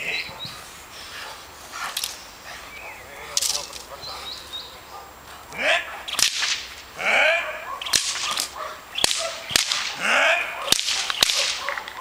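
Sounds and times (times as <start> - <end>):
dog barking: 2.8 - 6.1, 7.2 - 9.5, 10.2 - 12.0
whip cracking: 3.3 - 3.9, 6.0 - 6.9, 7.8 - 12.0.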